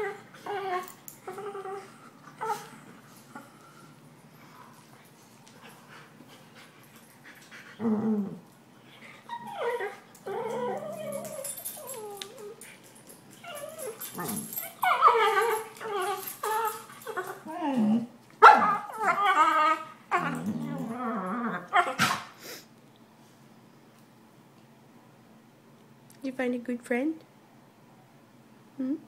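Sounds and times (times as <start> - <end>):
puppies whining and yipping: 9.0 - 22.1.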